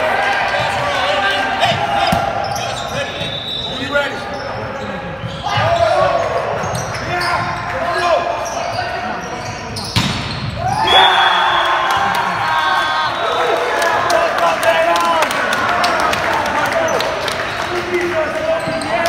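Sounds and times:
players and spectators shouting: 0:00.0 - 0:09.3, 0:10.6 - 0:17.3
volleyball being struck: 0:10.0 - 0:10.4.

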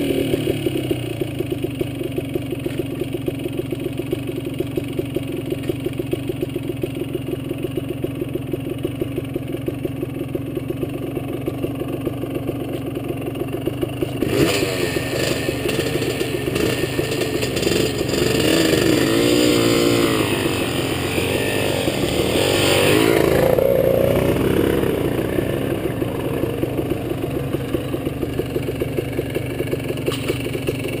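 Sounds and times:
quad bike engine revving: 0:00.0 - 0:06.9, 0:11.2 - 0:31.0.

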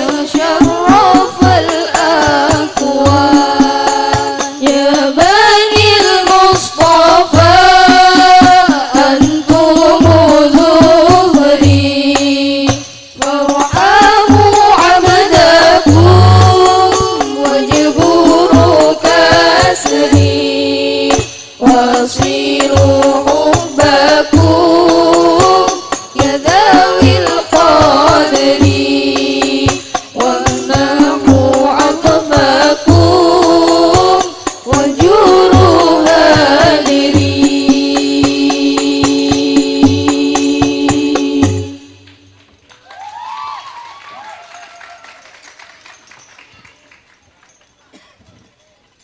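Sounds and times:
woman singing devotional song: 0:00.0 - 0:42.3
frame drums playing: 0:00.0 - 0:42.4.

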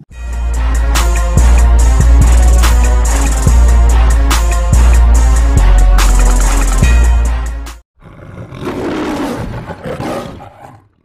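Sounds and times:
music with heavy bass beat: 0:00.2 - 0:07.8
lion roaring: 0:08.0 - 0:11.0.

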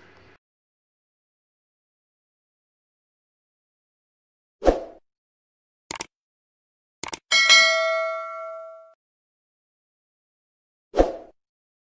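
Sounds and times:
bell ding: 0:07.3 - 0:09.0.

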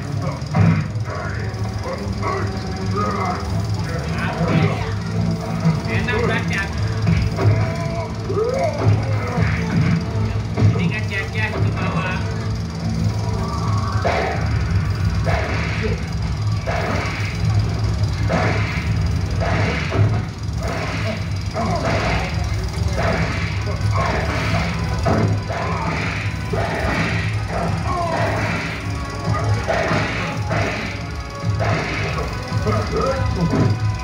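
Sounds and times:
film music over loudspeakers: 0:00.0 - 0:34.0
steady low hum: 0:00.0 - 0:34.0
voices: 0:00.0 - 0:34.0
sharp hits: 0:02.8 - 0:34.0.

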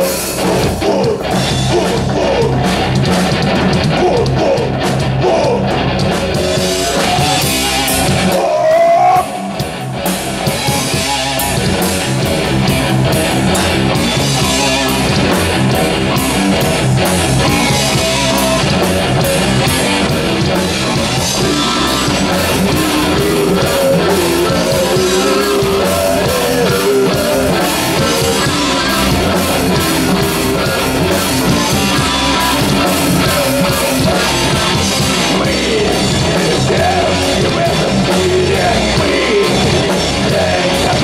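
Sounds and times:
live metal band playing: 0:00.0 - 0:41.0.

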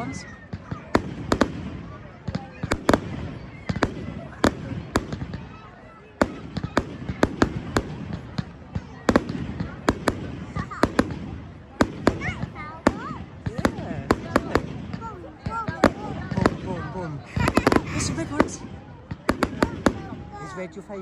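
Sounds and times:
fireworks bangs and crackles: 0:00.0 - 0:21.0.

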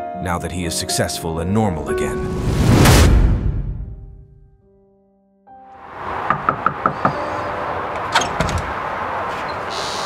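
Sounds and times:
knocking on a door: 0:06.3 - 0:07.2.

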